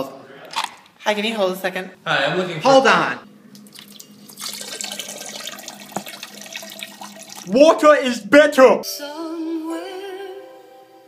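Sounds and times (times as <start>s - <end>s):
liquid pouring into toilet bowl: 3.5s - 7.7s.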